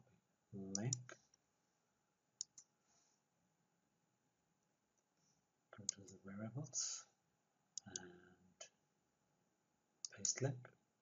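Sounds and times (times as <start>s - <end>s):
computer mouse clicks: 0.7s - 1.2s, 2.4s - 2.7s, 7.8s - 8.1s, 10.0s - 10.5s.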